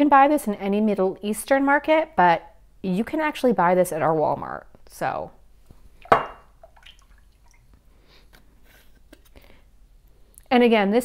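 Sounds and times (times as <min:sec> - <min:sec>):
faint drips: 0:06.6 - 0:07.8.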